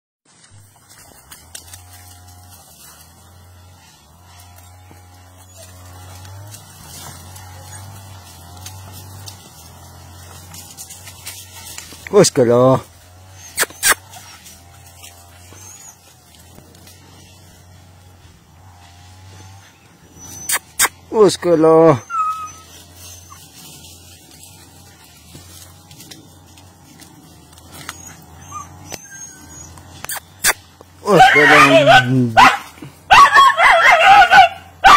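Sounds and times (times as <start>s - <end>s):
steady low hum: 0.4s - 21.2s, 22.1s - 33.2s
dog whining: 5.4s - 6.1s, 13.3s - 14.4s, 15.4s - 16.2s, 19.4s - 21.0s, 21.8s - 23.6s, 27.6s - 32.4s
dog yapping: 13.3s - 14.5s, 15.4s - 16.1s, 20.2s - 21.0s, 21.9s - 23.6s, 27.6s - 34.9s.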